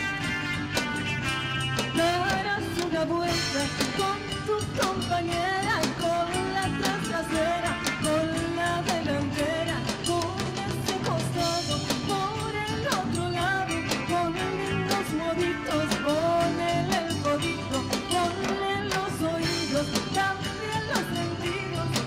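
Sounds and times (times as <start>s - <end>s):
drum kit beat: 0.0s - 22.0s
live folk dance band: 0.0s - 22.0s.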